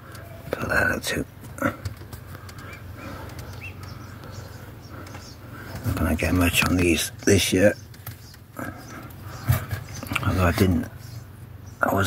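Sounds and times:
plants rustling and clicking: 0.0 - 10.9
steady low hum: 0.0 - 12.0.

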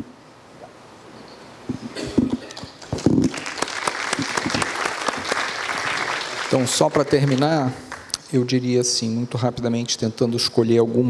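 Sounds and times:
audience applauding: 2.8 - 8.2.

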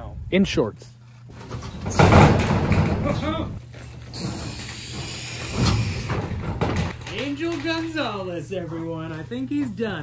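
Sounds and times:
metal frame thump and clatter: 1.3 - 3.5, 4.2 - 7.8
metal frame creaks and knocks: 1.3 - 8.0.

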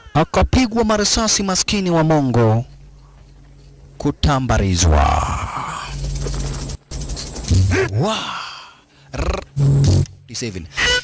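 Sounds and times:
man exclaiming breathily: 7.7 - 9.2.

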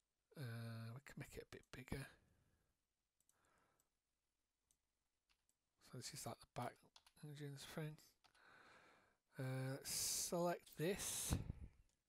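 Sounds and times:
computer mouse clicks: 6.9 - 7.2
soft breath: 8.3 - 9.2.

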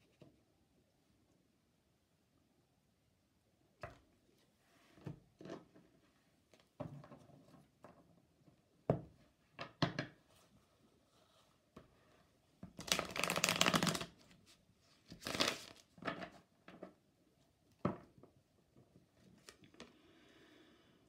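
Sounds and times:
cards being shuffled: 12.8 - 14.3, 15.1 - 16.3.

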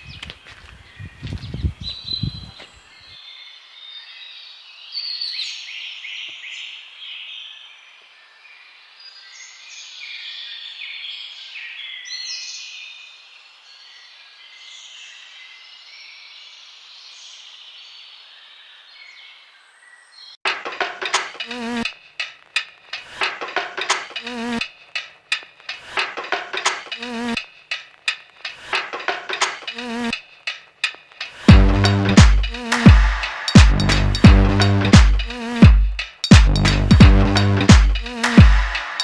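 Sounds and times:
sharp clicks and knocks: 20.5 - 34.3
insects chirping and buzzing: 21.4 - 31.5, 35.3 - 36.3.

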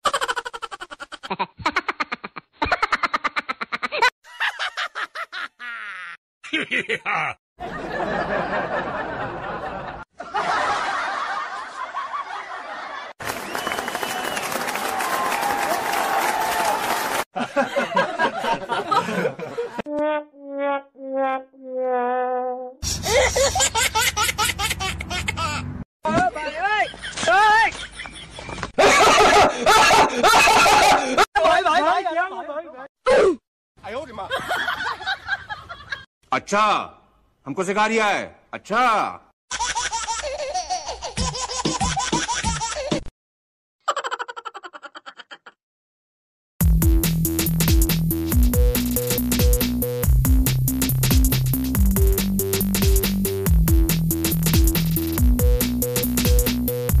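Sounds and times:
high-pitched giggling laughter: 0.0 - 7.4, 22.9 - 25.7, 43.9 - 45.6
canned audience laughter: 1.4 - 13.2, 17.4 - 19.8, 26.9 - 31.3.

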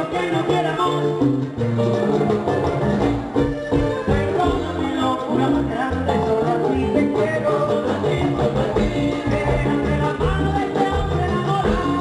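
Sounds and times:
accordion: 0.0 - 12.0
congas: 0.0 - 12.0
live band playing: 0.0 - 12.0.

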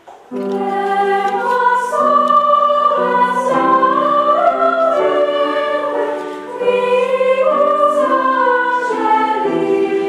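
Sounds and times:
choir singing sustained chords: 0.5 - 10.0.

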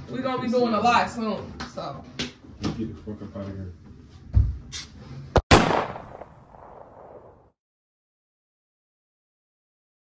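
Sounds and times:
loud bang: 5.4 - 7.4.

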